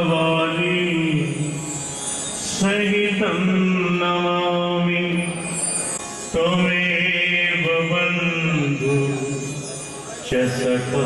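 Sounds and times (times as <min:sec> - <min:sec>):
man singing a slow chant: 0:00.0 - 0:01.7, 0:02.5 - 0:05.5, 0:06.3 - 0:11.0.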